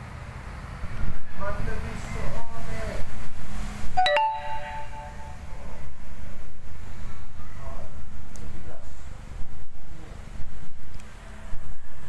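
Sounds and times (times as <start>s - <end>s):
metallic ding: 4.0s - 5.4s.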